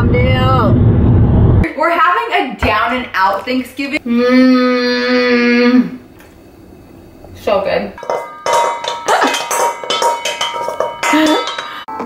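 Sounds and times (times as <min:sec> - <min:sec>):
metal bowl ringing: 0:08.0 - 0:12.0.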